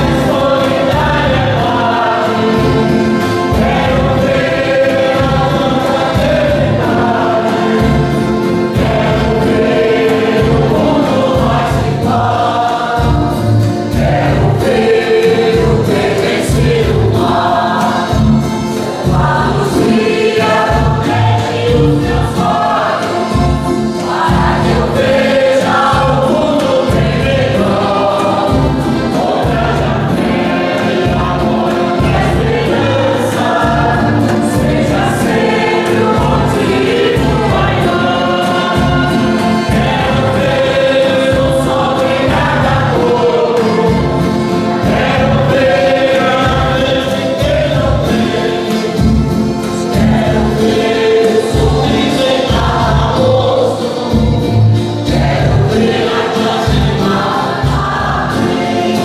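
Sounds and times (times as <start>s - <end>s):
acoustic guitar: 0.0s - 59.0s
church choir singing a hymn: 0.0s - 59.0s
steady beat: 0.0s - 59.0s.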